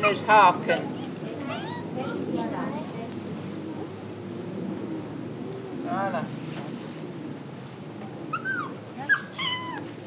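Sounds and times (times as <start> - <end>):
dog whining: 0.9 - 1.9, 8.3 - 9.9.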